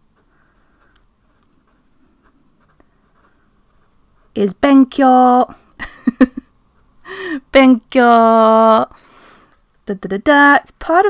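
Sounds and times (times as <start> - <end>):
pen scratching on paper: 0.1 - 5.1.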